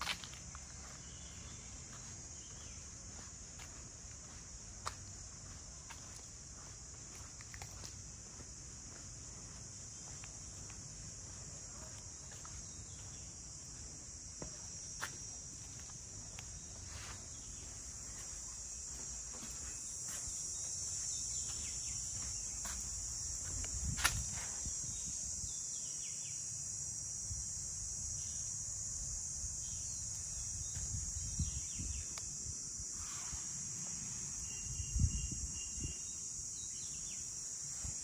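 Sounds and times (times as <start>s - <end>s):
insect chorus: 0.0s - 38.0s.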